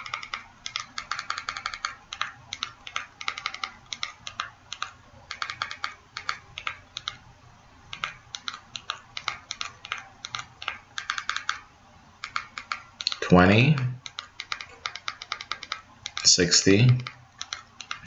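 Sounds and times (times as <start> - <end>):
computer keyboard keys clicking: 0.0 - 7.2, 7.9 - 11.6, 12.2 - 18.0.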